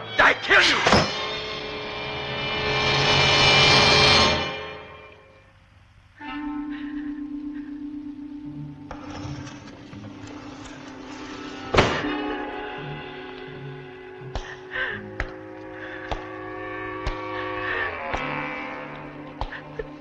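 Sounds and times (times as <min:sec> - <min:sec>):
orchestral string tones: 0:06.2 - 0:20.0.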